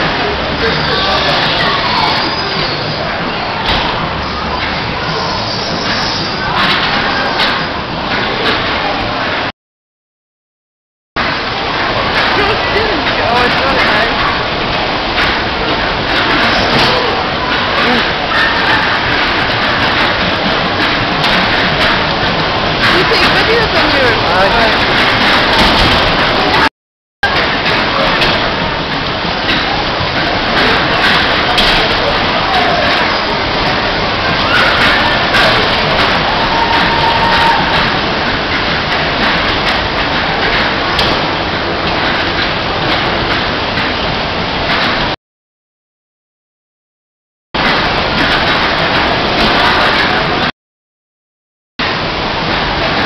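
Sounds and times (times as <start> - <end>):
dodgem cars running: 11.2 - 45.1.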